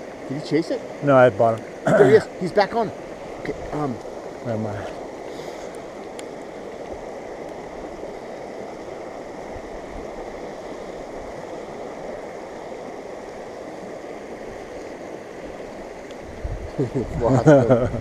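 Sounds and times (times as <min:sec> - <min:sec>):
rocky river rushing: 0:00.0 - 0:16.0.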